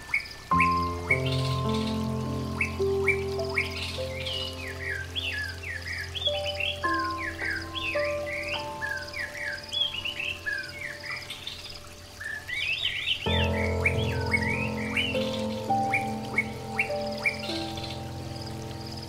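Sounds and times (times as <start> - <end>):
soft music of held notes: 0.0 - 19.0
birds chirping and singing: 0.2 - 19.0.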